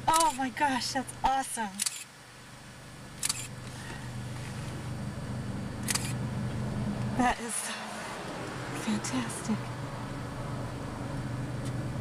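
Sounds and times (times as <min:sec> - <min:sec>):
steady low hum: 0:00.0 - 0:12.0
camera shutter clicking: 0:01.8 - 0:02.1, 0:03.2 - 0:03.5, 0:05.8 - 0:06.2.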